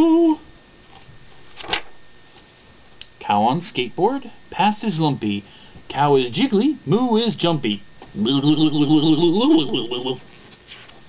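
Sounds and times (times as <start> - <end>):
man imitating cow moo: 0.0 - 0.4, 8.2 - 10.2.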